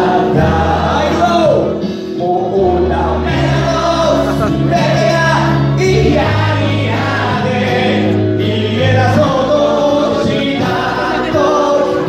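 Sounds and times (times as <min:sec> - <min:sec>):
group singing in chorus: 0:00.0 - 0:12.0.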